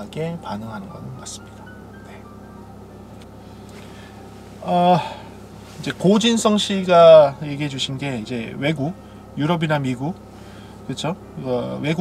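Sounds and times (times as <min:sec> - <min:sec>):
faint background music: 0:00.0 - 0:10.2
car cabin hum: 0:00.0 - 0:12.0.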